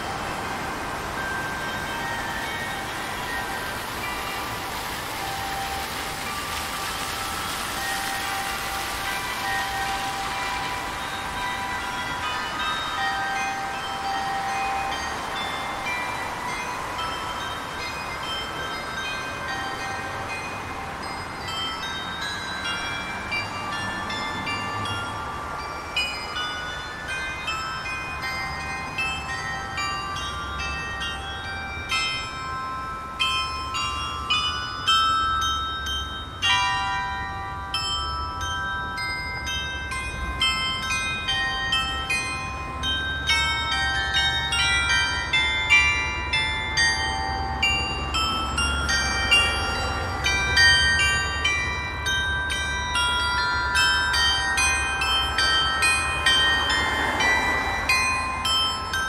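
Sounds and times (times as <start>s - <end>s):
glockenspiel bells playing melody: 0.0s - 59.0s
street traffic noise: 0.0s - 59.0s.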